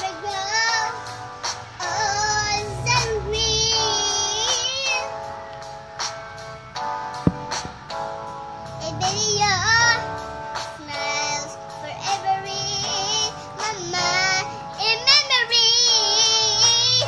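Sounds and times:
girl singing a pop ballad: 0:00.0 - 0:17.0
instrumental backing: 0:03.0 - 0:11.9.

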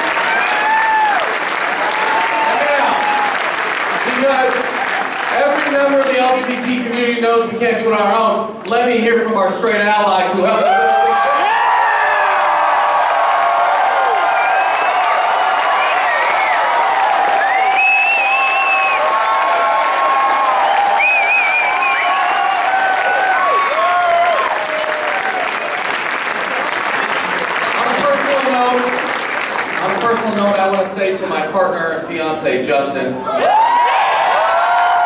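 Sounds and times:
shouts and whoops: 0:00.0 - 0:03.5, 0:10.6 - 0:25.8, 0:33.2 - 0:35.0
crowd cheering and applauding: 0:00.0 - 0:06.9, 0:10.4 - 0:30.9, 0:33.3 - 0:35.0.

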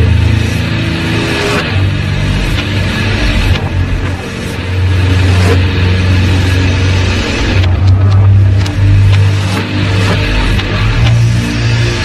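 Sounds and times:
distorted guitar and bass droning: 0:00.0 - 0:12.0.

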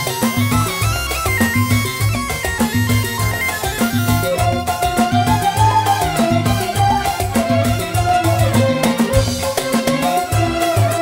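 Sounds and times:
bamboo flute melody: 0:00.0 - 0:11.0
hand drums: 0:00.0 - 0:11.0
keyboard: 0:00.0 - 0:11.0.

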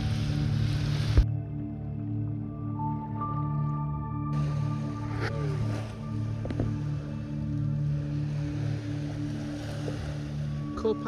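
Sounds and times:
sustained low music notes: 0:00.0 - 0:11.0.

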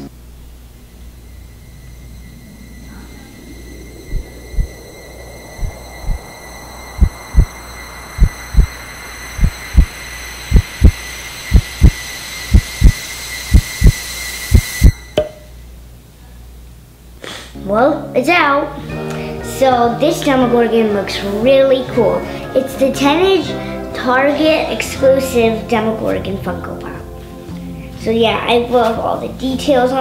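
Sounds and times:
thin high whine: 0:00.0 - 0:17.2
heartbeat thumps: 0:04.1 - 0:04.8, 0:05.5 - 0:08.8, 0:09.4 - 0:15.0.

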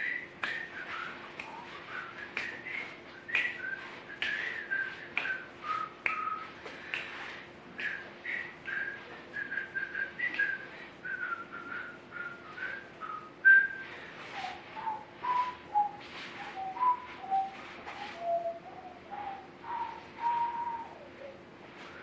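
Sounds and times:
person whistling a tune: 0:00.0 - 0:07.1, 0:07.8 - 0:21.4.

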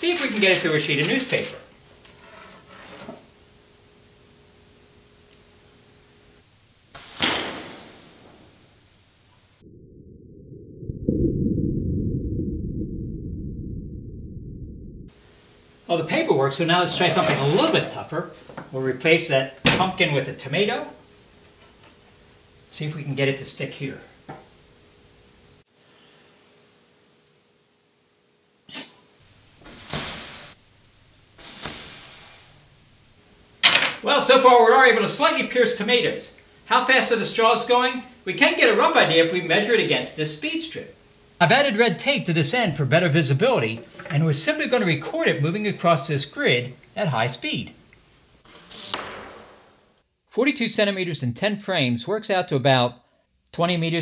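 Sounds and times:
dart hitting newspaper: 0:07.0 - 0:08.4, 0:29.7 - 0:30.5, 0:31.4 - 0:32.2, 0:48.7 - 0:49.8
deep muffled rumble: 0:09.6 - 0:15.1.

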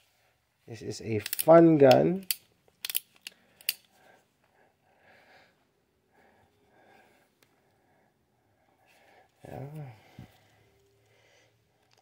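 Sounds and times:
faint soft sounds: 0:03.1 - 0:12.0.

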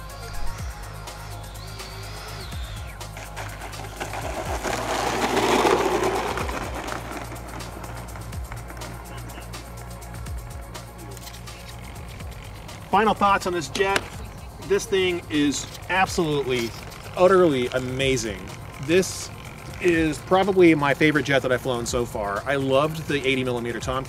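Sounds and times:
rushing fan sound: 0:00.0 - 0:23.8
background music: 0:00.0 - 0:24.0.

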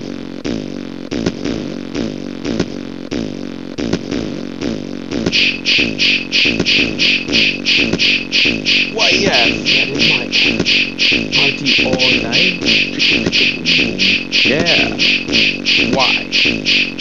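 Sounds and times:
beatbox drum loop: 0:00.0 - 0:17.0
vocal snippets: 0:08.9 - 0:10.7, 0:11.3 - 0:16.7.

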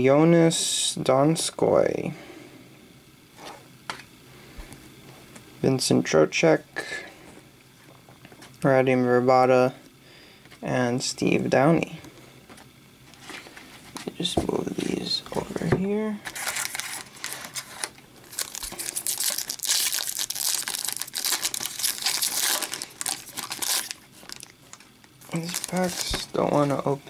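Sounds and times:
foil wrapper crinkling and tearing: 0:16.2 - 0:26.9.

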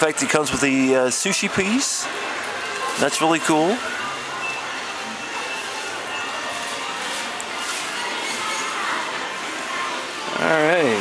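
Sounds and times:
busy shop background noise: 0:00.0 - 0:11.0
faint distant voices: 0:00.0 - 0:11.0.

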